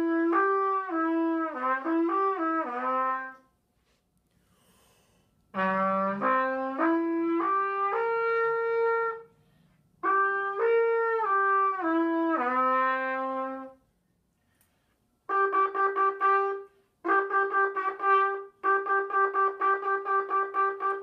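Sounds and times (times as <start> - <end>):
plastic trumpet notes: 0.0 - 3.5, 5.5 - 9.3, 10.0 - 13.8, 15.3 - 21.0.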